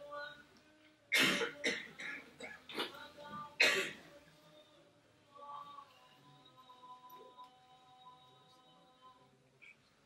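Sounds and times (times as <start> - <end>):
person coughing: 1.2 - 3.0, 3.6 - 4.0.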